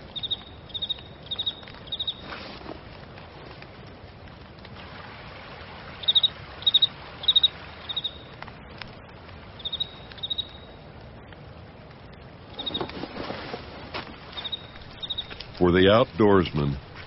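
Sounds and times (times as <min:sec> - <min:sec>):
cricket-like chirping: 0:00.0 - 0:02.3, 0:06.0 - 0:08.3, 0:09.5 - 0:10.8, 0:12.5 - 0:13.0, 0:14.3 - 0:15.4
low background noise: 0:00.0 - 0:17.0.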